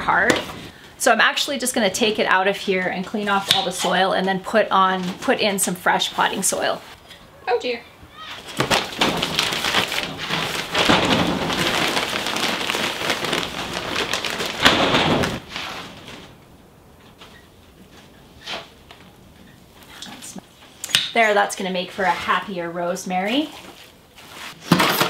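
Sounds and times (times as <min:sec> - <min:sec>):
plastic bag rustling: 0:08.4 - 0:16.6.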